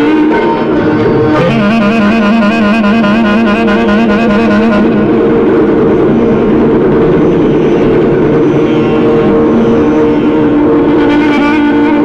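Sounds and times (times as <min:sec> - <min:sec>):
clarinet holding steady notes: 0:00.0 - 0:05.3, 0:08.6 - 0:12.0
harmonium: 0:00.0 - 0:12.0
tabla: 0:00.0 - 0:12.0.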